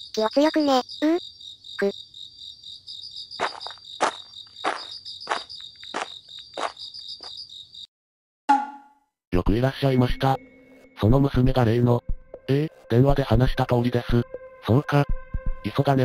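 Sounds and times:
crickets trilling: 0.0 - 7.9
loud insect chirp: 0.0 - 7.9.

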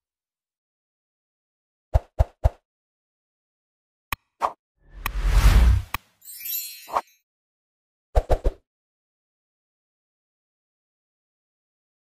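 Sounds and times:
rising whoosh: 5.0 - 6.0.

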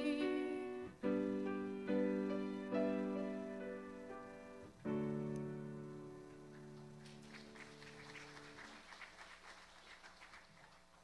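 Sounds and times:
piano chord: 0.0 - 8.0.

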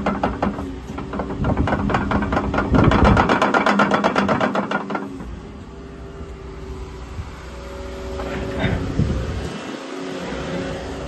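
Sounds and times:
excavator diesel engine running: 0.0 - 11.0.

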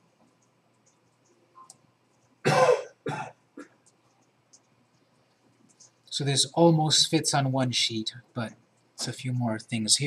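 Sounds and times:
person coughing: 2.4 - 3.8.

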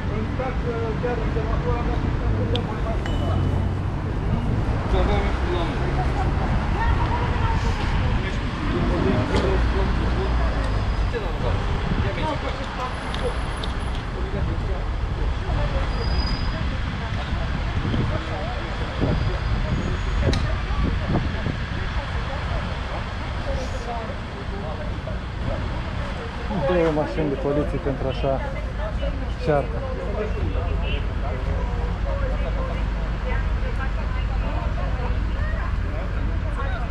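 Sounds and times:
indistinct voices: 0.0 - 36.9
street traffic rumble: 0.0 - 36.9.

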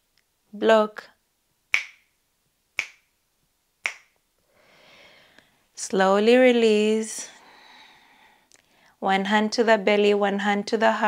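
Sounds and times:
finger snaps: 1.7 - 2.1, 2.8 - 3.1, 3.8 - 4.2.

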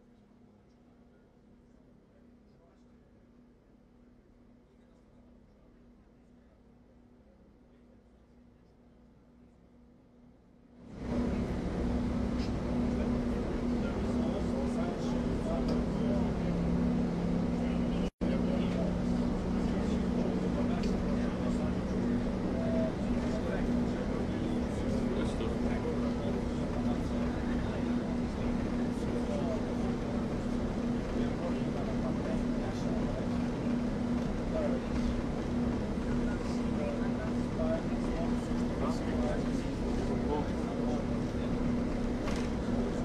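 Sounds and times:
bus engine drone: 0.0 - 43.0.

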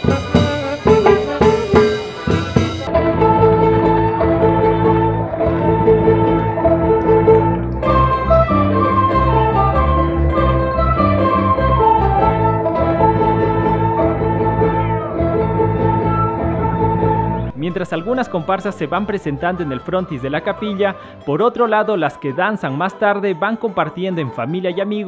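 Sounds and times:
steady bass pattern: 0.0 - 20.8
instrumental melody: 0.0 - 25.0.

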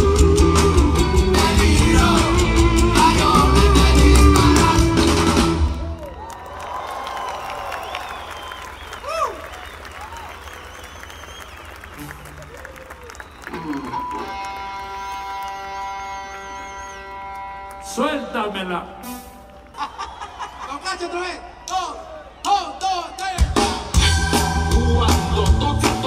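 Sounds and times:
live rock band playing: 0.0 - 6.0, 13.5 - 19.8, 23.4 - 26.0
crowd applauding and cheering: 1.4 - 17.8, 19.4 - 26.0.

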